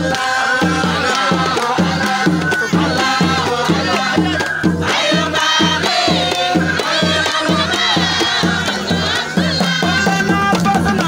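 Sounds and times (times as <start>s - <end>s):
steady drum beat: 0.0s - 11.0s
women singing and ululating: 0.0s - 11.0s.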